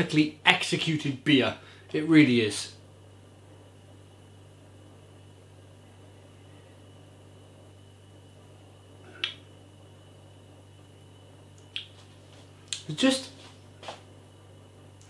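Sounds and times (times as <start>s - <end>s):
low steady hum: 0.0s - 15.0s
lip smack: 9.1s - 9.4s, 11.6s - 12.0s.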